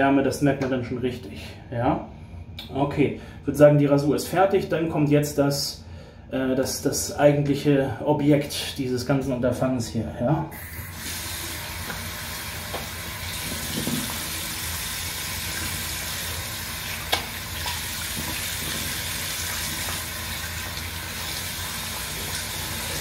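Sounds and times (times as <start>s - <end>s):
tap running into sink: 11.8s - 14.4s, 16.9s - 20.1s.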